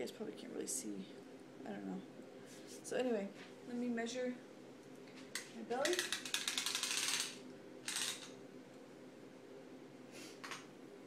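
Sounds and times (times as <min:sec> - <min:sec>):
measuring tape clicking: 0:05.8 - 0:08.4.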